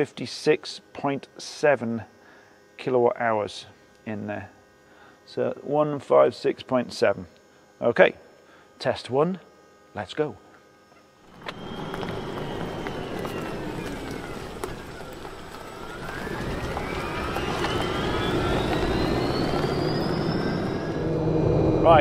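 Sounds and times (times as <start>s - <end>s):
electric motor whine: 0.0s - 22.0s
tyre and road noise: 11.3s - 21.3s.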